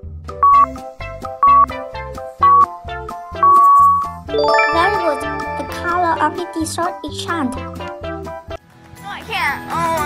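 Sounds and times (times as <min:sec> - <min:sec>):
background music with steady beat: 0:00.0 - 0:08.4
electronic sound effects: 0:04.4 - 0:06.5
sparkling chime flourish: 0:04.4 - 0:06.5.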